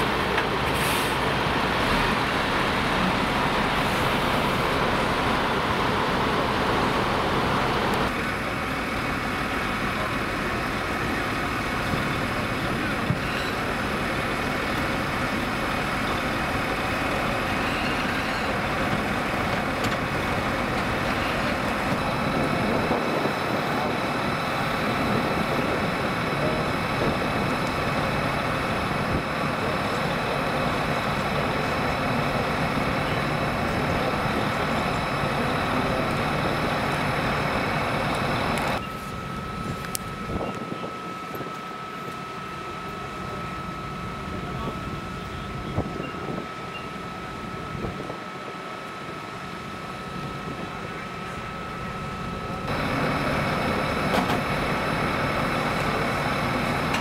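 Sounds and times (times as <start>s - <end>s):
engine and pump droning: 0.0s - 57.0s
thin steady whine: 0.0s - 57.0s
faint voices: 4.7s - 57.0s.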